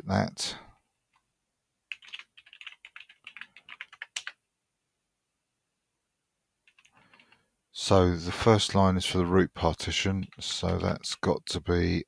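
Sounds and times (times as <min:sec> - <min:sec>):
keyboard typing: 0:01.9 - 0:04.4, 0:06.6 - 0:07.5.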